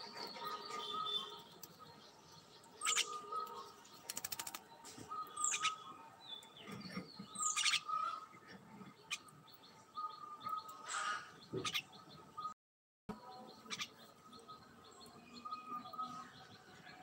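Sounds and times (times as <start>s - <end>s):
bird chirping: 0.0s - 17.0s.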